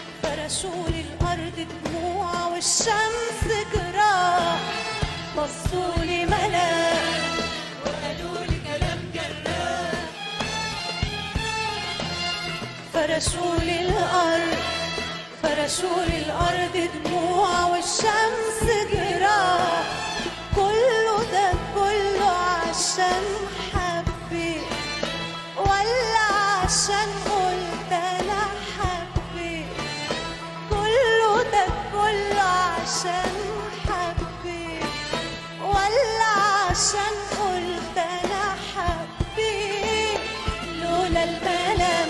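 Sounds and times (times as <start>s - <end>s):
instrumental accompaniment: 0.0s - 42.0s
pop band with drums: 0.0s - 42.0s.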